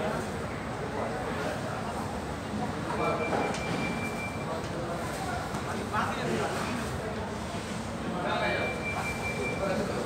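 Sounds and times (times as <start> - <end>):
murmur of indistinct voices: 0.0 - 10.0
electronic beep: 3.2 - 4.4, 8.6 - 9.7.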